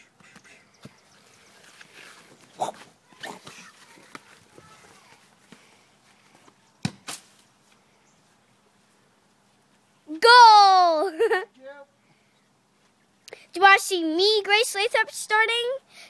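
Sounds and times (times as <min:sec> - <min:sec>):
ball kicks on grass: 0:06.4 - 0:07.5.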